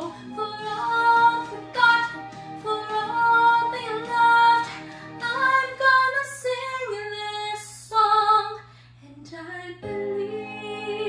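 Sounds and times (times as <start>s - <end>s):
woman singing a slow ballad: 0.0s - 11.0s.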